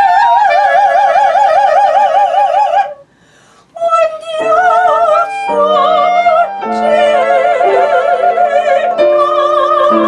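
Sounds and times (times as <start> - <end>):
operatic soprano singing high note: 3.8 - 10.0
clarinet steady note: 4.4 - 9.0.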